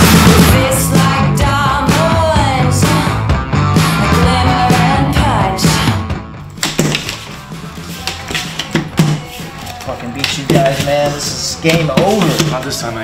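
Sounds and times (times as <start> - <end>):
rock music: 0.0 - 9.8.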